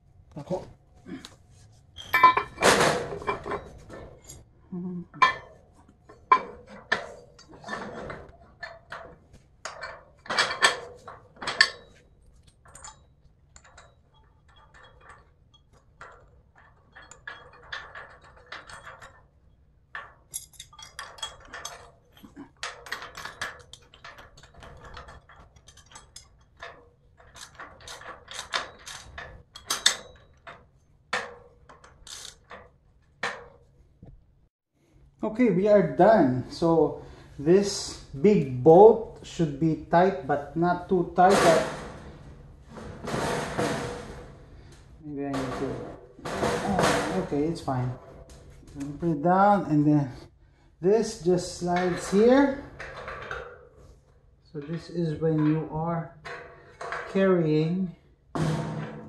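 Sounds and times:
metal hardware clinking: 2.0 - 4.5, 5.2 - 33.8
metal scraping: 35.7 - 57.5.

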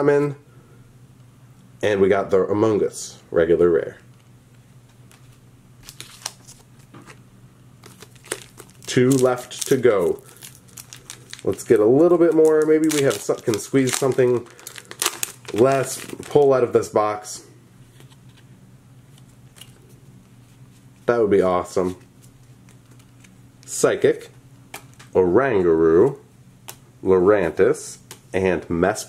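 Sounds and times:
steady low hum: 0.0 - 29.0
cards being handled: 5.0 - 7.2, 7.8 - 16.6, 19.1 - 23.9
foil wrapper crinkling: 5.8 - 7.0, 7.8 - 16.6.

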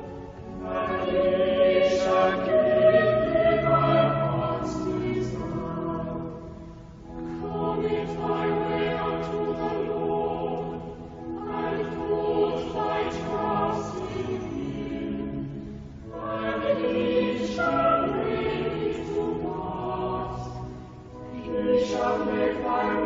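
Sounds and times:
choir singing held chords: 0.0 - 23.0.

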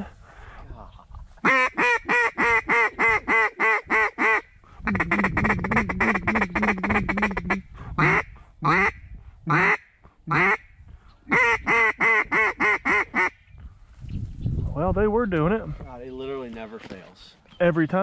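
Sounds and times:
duck call quacks: 1.4 - 10.7, 11.3 - 13.4.

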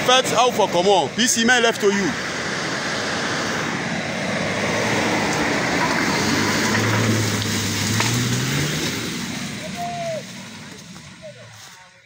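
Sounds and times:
steady rushing noise: 0.0 - 11.1
pickup truck engine revving: 0.0 - 11.7.

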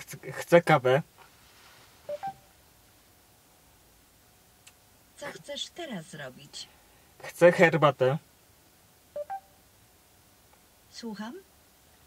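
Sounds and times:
quiet cabin hum: 0.0 - 12.0
short electronic beeps: 2.1 - 2.5, 9.2 - 9.6.

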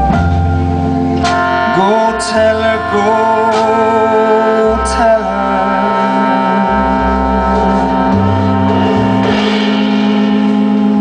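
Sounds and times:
jazz band playing slow ballad: 0.0 - 11.0
cymbal hit: 1.1 - 11.0
man singing: 1.6 - 8.5.

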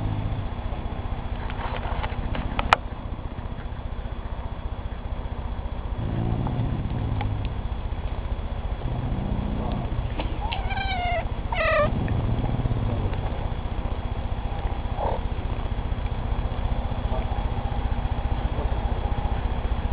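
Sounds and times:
dog low rumbling growl: 0.0 - 5.1, 5.8 - 15.6, 16.4 - 19.6
kitten meowing: 10.4 - 11.9.

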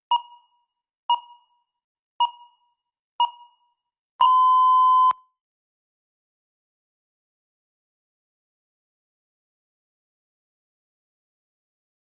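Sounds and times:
electronic timer beep: 0.1 - 1.6, 2.2 - 5.2.

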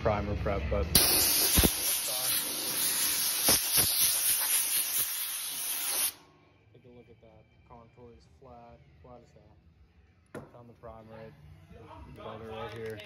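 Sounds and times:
compressed air blow gun hissing: 1.0 - 6.2.

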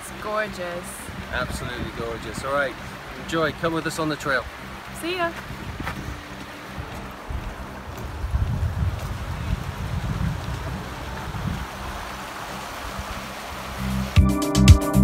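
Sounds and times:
creek water running: 0.0 - 14.3
electronic music with steady beat: 13.8 - 15.0.

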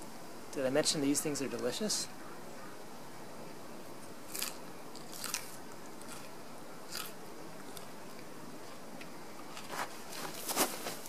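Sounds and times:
person chewing crisp stem: 4.3 - 9.9.

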